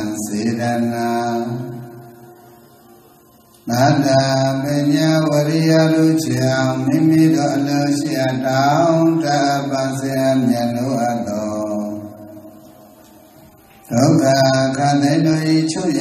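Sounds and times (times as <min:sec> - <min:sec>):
chanting in long melodic notes: 0:00.0 - 0:16.0.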